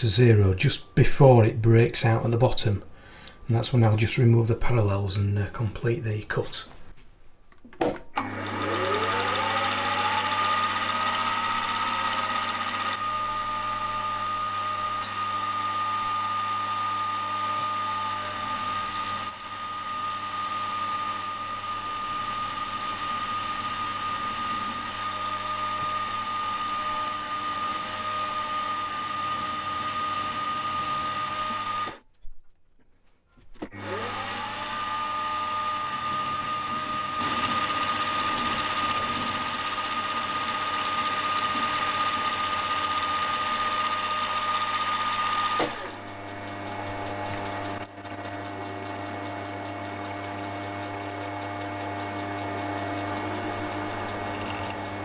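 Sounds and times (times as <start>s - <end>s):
milling machine motor whine: 34.0s - 55.0s.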